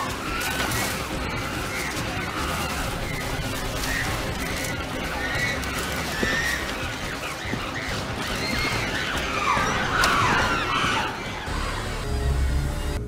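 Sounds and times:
apes screaming: 0.0 - 12.9.

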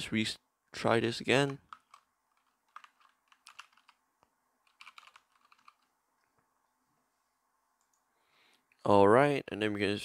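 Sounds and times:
typing on computer keyboard: 1.4 - 4.0, 4.6 - 5.9.

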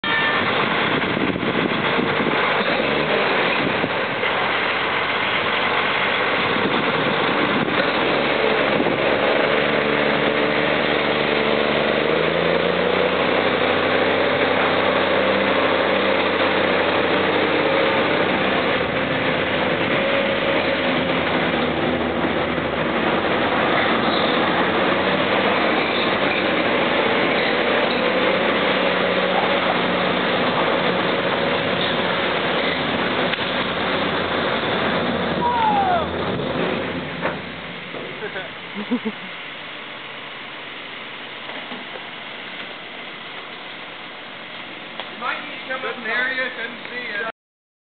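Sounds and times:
diesel truck engine under load: 0.0 - 47.3.

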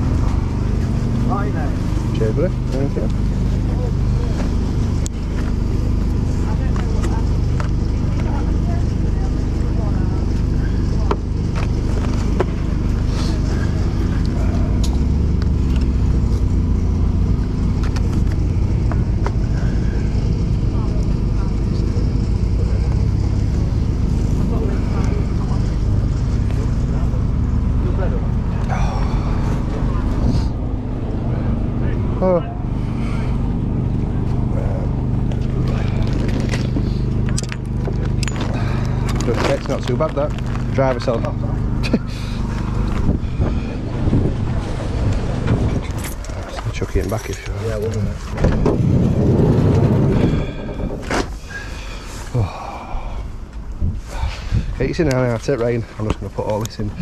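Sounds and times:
constant hum: 0.0 - 57.0
faint voices: 0.0 - 57.0
low motor drone: 0.0 - 57.0.

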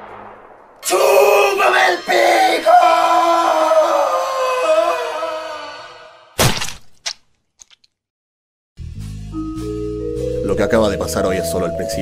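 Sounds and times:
cartoon character screaming: 1.1 - 6.2.

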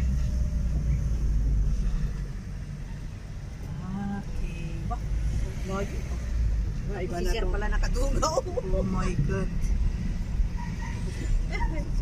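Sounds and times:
car driving slowly: 0.0 - 12.0.

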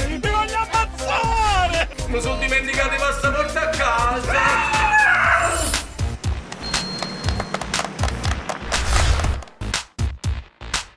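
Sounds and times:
trailer music with drum hits: 0.0 - 10.9
woman screaming: 4.3 - 5.7.

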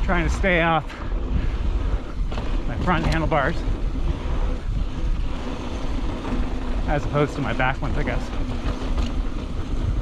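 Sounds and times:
bike tyres on dirt trail: 0.0 - 10.0
wind rumble on microphone: 0.0 - 10.0.

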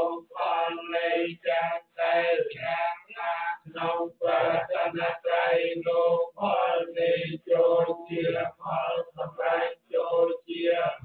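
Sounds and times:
men chanting monotone: 0.0 - 11.0.

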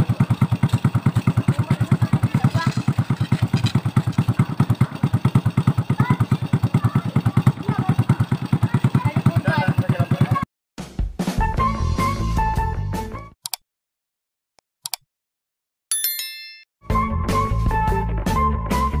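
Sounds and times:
motorcycle engine idling: 0.0 - 10.5.

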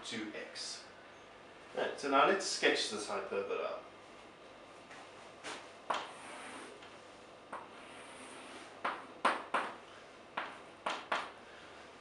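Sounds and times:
chalk tapping on chalkboard: 5.5 - 6.7, 7.5 - 9.8, 10.4 - 11.4.

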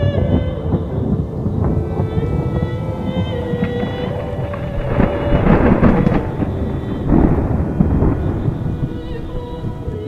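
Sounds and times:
rain: 0.0 - 10.0
rolling thunder: 0.0 - 10.0
soft music with held tones: 0.0 - 10.0.

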